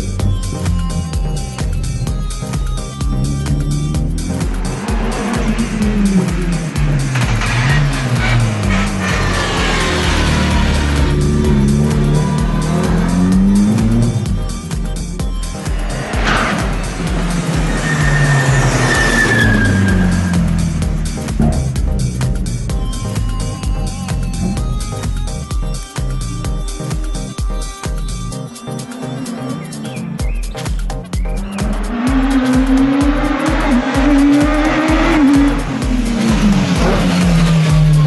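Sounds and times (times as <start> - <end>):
race car engines revving: 2.6 - 25.4, 28.2 - 38.0
thin high squeal: 17.7 - 20.4.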